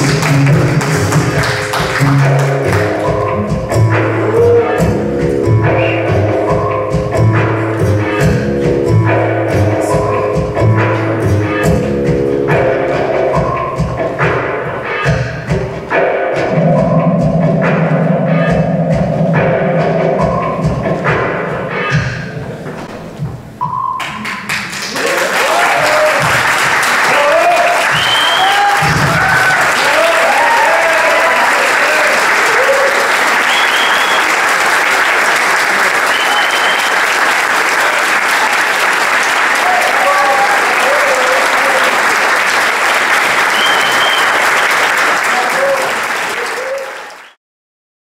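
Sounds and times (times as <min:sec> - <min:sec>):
audience applauding: 0:00.0 - 0:03.2, 0:24.0 - 0:47.4
dance music: 0:00.0 - 0:24.7, 0:25.5 - 0:44.4
crowd cheering and shouting: 0:04.2 - 0:04.9, 0:24.9 - 0:34.2, 0:37.8 - 0:42.2, 0:45.2 - 0:47.2.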